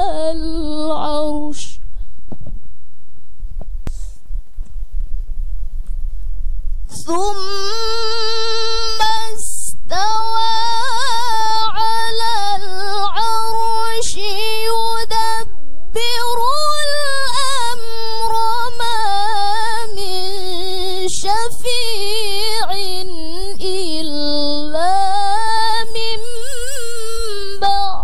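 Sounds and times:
brief hiss: 3.8s - 4.4s
woman chanting melodically: 6.9s - 28.0s.

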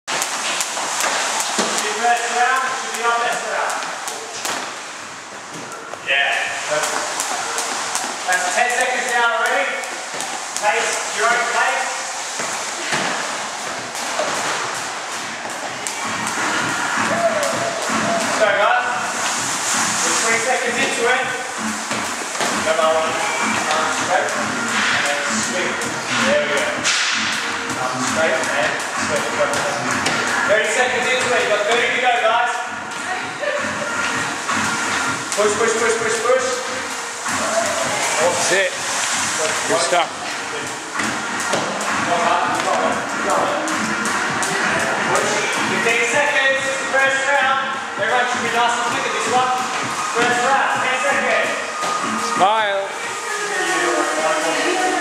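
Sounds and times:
skipping rope slapping floor: 0.1s - 6.0s, 6.7s - 11.6s, 12.3s - 18.4s, 19.1s - 32.0s, 32.7s - 47.3s, 48.2s - 52.2s
indistinct voices echoing: 1.1s - 55.0s.

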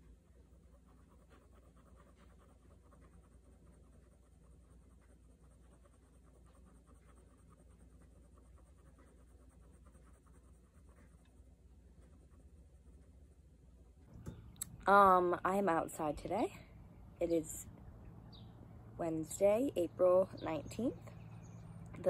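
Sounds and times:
steady low hum: 0.0s - 22.0s
ink pen scratching on paper: 0.3s - 13.2s.

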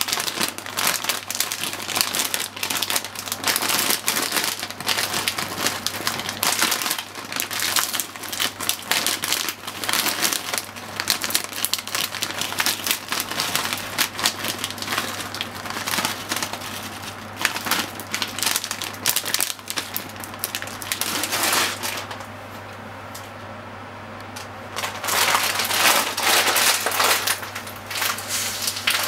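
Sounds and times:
kernels crackling: 0.0s - 22.3s, 24.3s - 29.0s
plastic bag crinkling: 0.0s - 22.4s, 24.7s - 29.0s.

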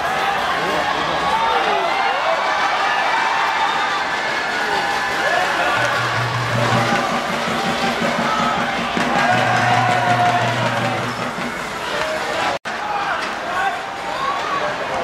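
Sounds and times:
spectators shouting: 0.0s - 13.2s
low droning tone: 5.8s - 8.5s.

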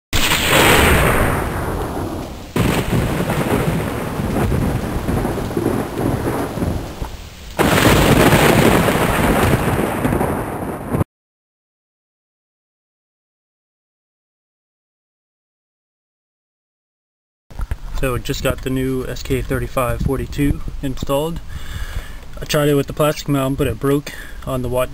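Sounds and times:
thunder peals and rumbling: 0.2s - 11.1s.

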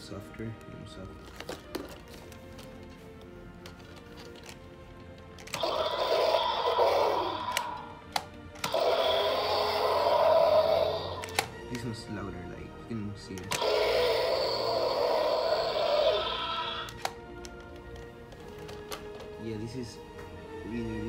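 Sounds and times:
electronic dinosaur toy roars: 5.5s - 8.0s, 8.6s - 11.3s, 13.5s - 17.0s
light plastic clicks: 16.9s - 19.4s.

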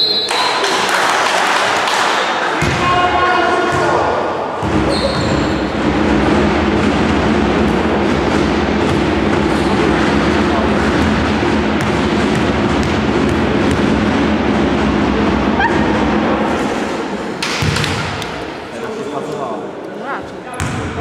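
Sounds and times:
referee's whistle: 0.0s - 0.5s, 4.9s - 5.6s
echoing indistinct voices: 0.0s - 21.0s
basketball bouncing on wooden floor: 11.8s - 14.0s.

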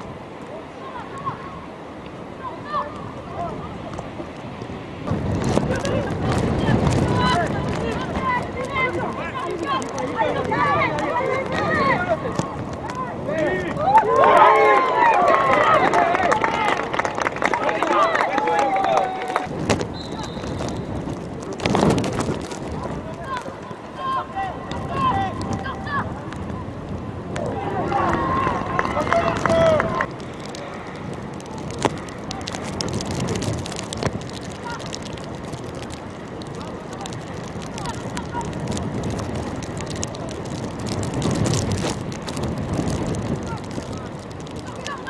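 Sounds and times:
wind rumble on microphone: 0.0s - 45.0s
boys shouting: 0.7s - 1.7s, 7.1s - 16.8s, 23.2s - 26.2s, 27.4s - 30.1s, 44.6s - 45.0s.

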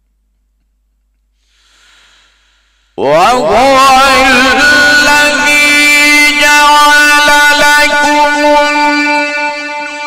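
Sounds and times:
faint breath: 1.4s - 3.0s
man reciting melodically: 3.0s - 10.0s.

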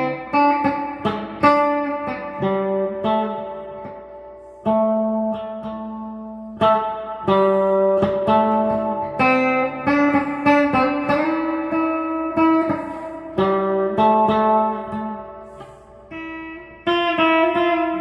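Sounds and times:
solo guitar playing: 0.0s - 18.0s.

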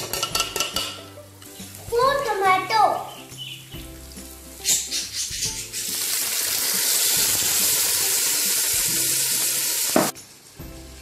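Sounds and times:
food sizzling in hot oil: 3.1s - 11.0s.

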